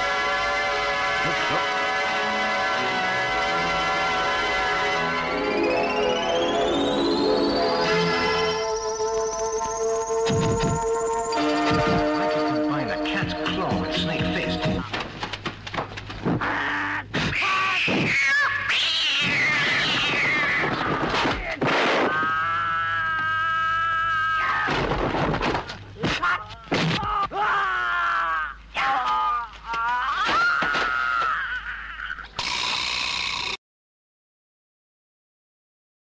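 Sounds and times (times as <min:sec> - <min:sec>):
person yelling and wailing: 0:16.4 - 0:24.7, 0:26.0 - 0:32.2.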